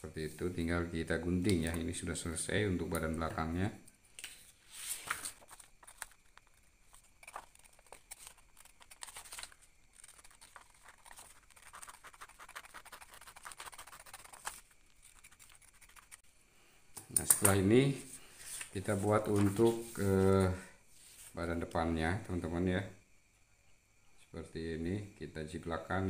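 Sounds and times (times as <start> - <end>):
paper rustling: 4.2 - 16.2, 18.3 - 21.4
scissors snipping paper: 7.1 - 16.2.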